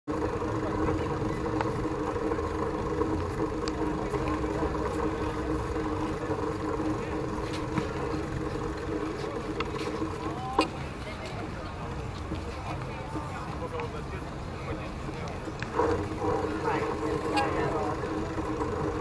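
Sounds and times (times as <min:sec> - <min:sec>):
mechanical hum with held tones: 0:00.1 - 0:19.0
people's voices: 0:00.1 - 0:19.0.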